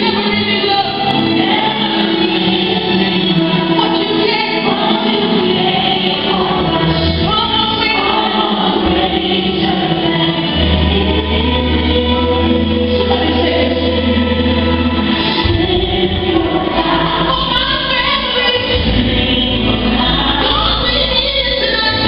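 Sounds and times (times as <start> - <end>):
gospel choir singing: 0.0 - 22.0.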